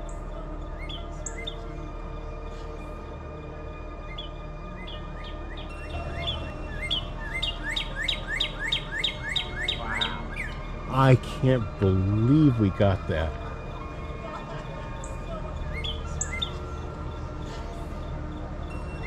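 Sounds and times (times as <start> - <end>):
bird chirping: 4.1 - 13.3.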